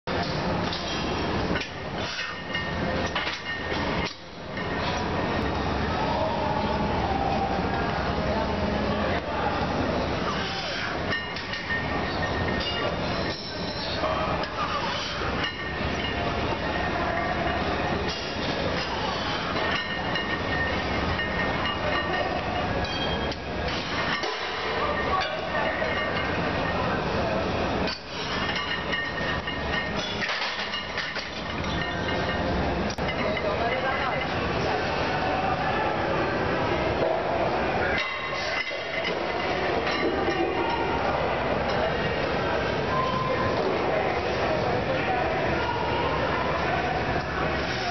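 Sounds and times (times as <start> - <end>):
busy gym din: 0.0 - 47.9
steady background noise: 0.0 - 47.9.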